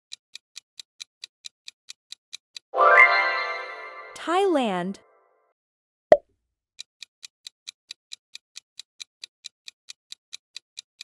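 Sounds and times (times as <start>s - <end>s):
fast clock ticking: 0.1s - 2.7s, 7.0s - 11.0s.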